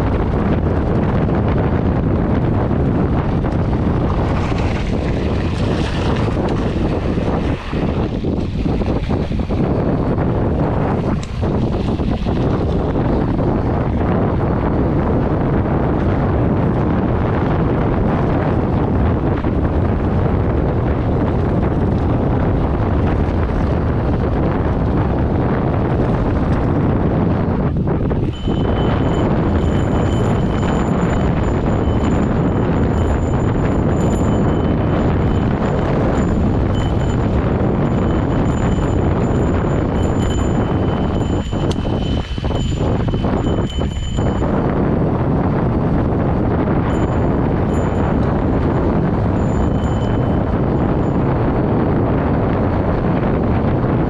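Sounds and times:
wind rushing on microphone: 0.0s - 54.0s
tyres rumbling on gravel: 3.1s - 10.0s.

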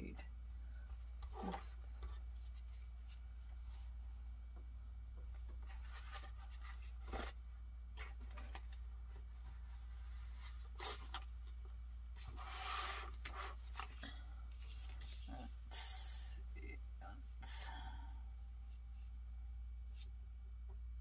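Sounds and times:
paper rustling and sliding: 12.2s - 14.0s.

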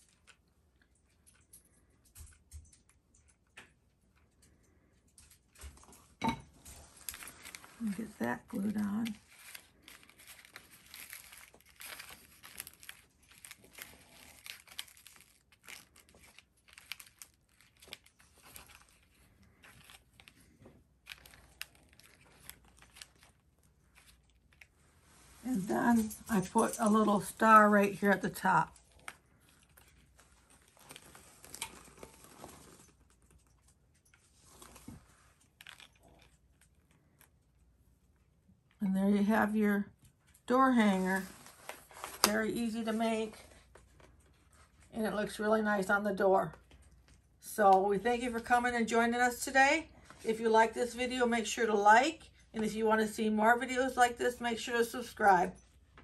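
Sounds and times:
hands rustling craft pieces: 6.7s - 37.4s
ribbon bow crinkling: 6.8s - 37.6s.

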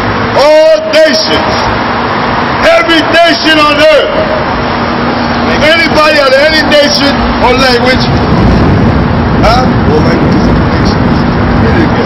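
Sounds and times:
city street traffic rumble: 0.0s - 12.0s
man's voice: 0.4s - 1.7s, 2.6s - 4.4s, 5.5s - 8.2s, 9.4s - 12.0s.

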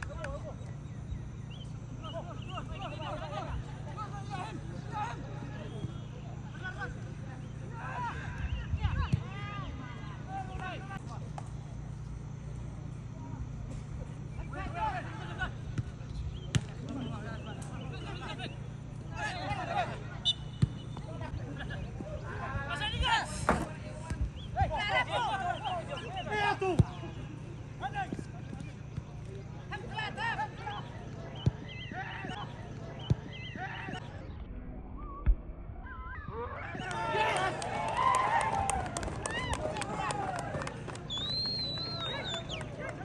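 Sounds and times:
low background hum: 0.0s - 43.0s
players shouting: 14.4s - 16.0s, 16.8s - 34.3s, 36.1s - 43.0s
football being kicked: 20.5s - 21.2s
spectators shouting: 36.2s - 43.0s.

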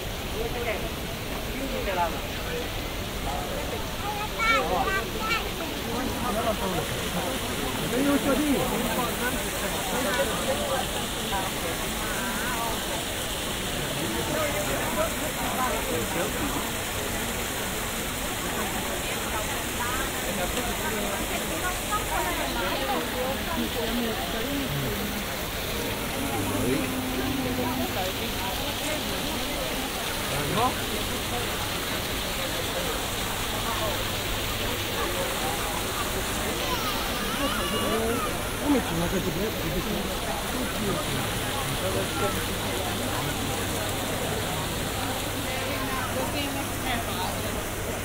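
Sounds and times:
crowd chatter: 0.0s - 48.0s
fountain water splashing: 0.0s - 48.0s.

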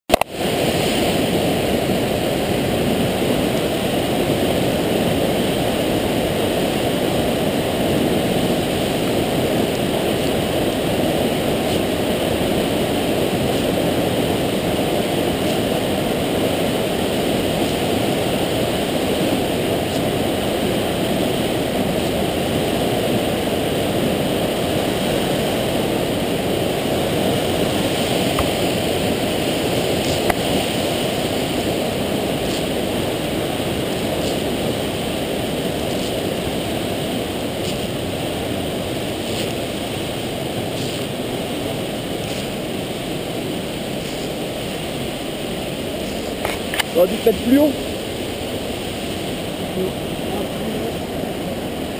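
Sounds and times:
waterfall and torrent rushing: 0.1s - 51.9s.

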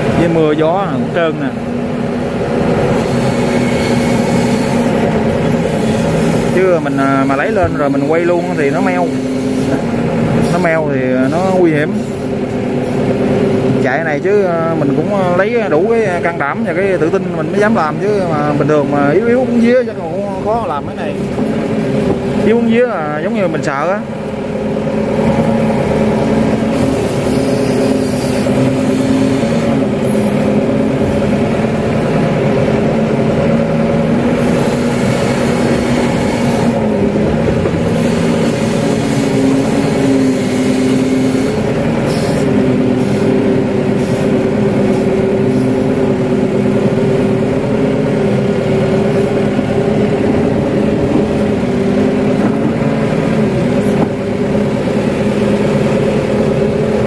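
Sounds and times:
excavator diesel engine running: 0.0s - 57.0s.

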